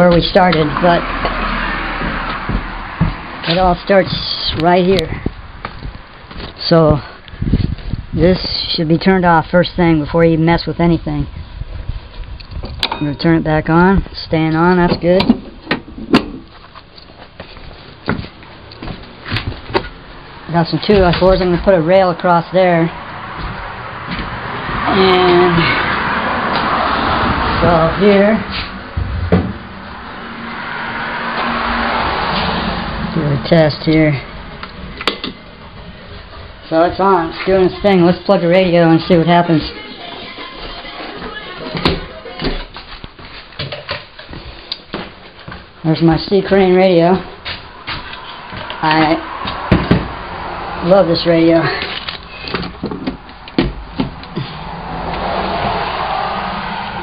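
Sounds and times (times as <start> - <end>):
footsteps on wooden deck: 0.0 - 6.6, 14.0 - 21.9, 22.9 - 25.4, 28.4 - 30.6, 39.9 - 46.1, 47.1 - 50.7
sharp clicks and knocks: 34.6 - 35.4.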